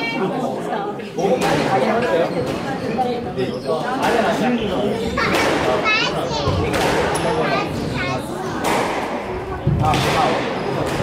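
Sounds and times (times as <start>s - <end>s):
squash ball struck hard: 8.6s - 11.0s.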